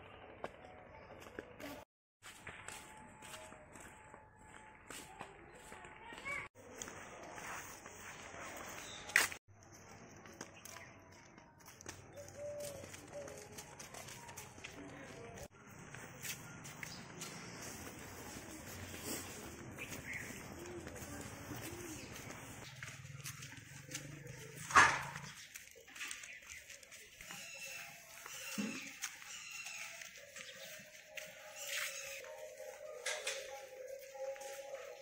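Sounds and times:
distant voices: 0:09.8 - 0:35.0.

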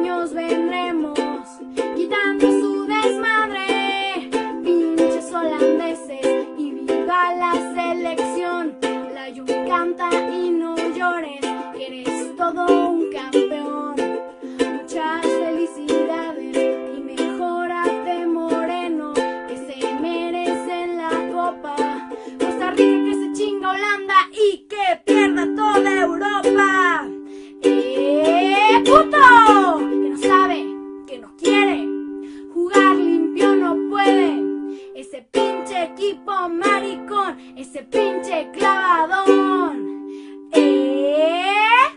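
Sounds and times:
person singing: 0:00.0 - 0:41.9
ukulele strumming chords: 0:00.0 - 0:41.9.

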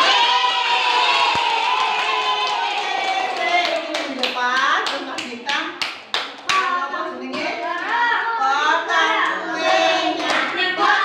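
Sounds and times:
group hand clapping: 0:00.0 - 0:06.7, 0:09.2 - 0:11.0.

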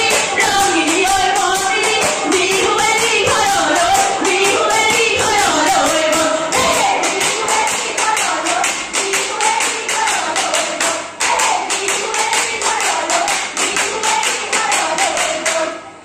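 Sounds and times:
fast rhythmic clapping: 0:00.0 - 0:15.8
women singing in a group: 0:00.0 - 0:15.9.

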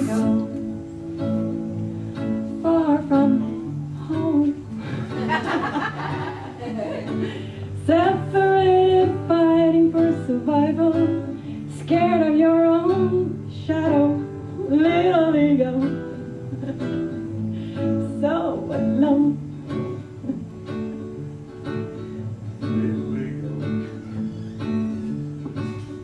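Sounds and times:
woman singing slow melody: 0:00.0 - 0:00.9, 0:02.3 - 0:05.4, 0:07.1 - 0:20.8
acoustic guitar: 0:00.0 - 0:26.0.

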